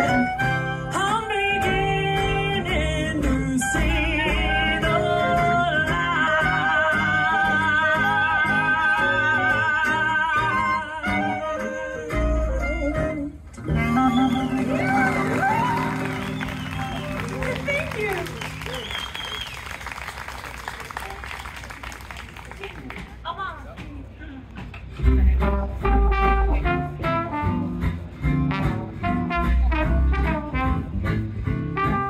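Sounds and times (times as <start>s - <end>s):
high-pitched cheer: 14.4s - 21.8s
small audience applauding: 14.5s - 23.2s
plucked bass line: 25.0s - 32.0s.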